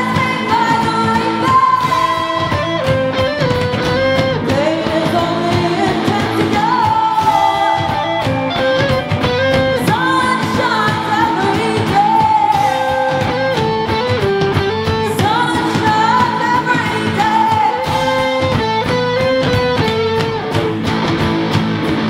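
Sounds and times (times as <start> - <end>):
heavy rock band playing: 0.0 - 22.0.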